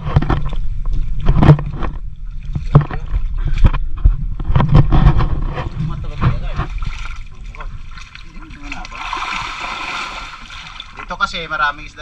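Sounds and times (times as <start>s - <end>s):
hands splashing pond water and mud: 6.1s - 11.0s.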